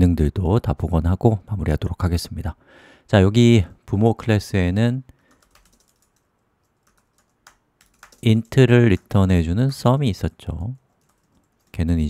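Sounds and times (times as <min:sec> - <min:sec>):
typing on computer keyboard: 0:05.3 - 0:10.0, 0:10.6 - 0:12.0.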